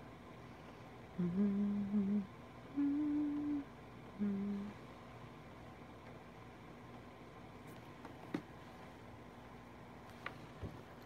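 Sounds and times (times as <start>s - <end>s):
woman humming: 1.2s - 4.8s.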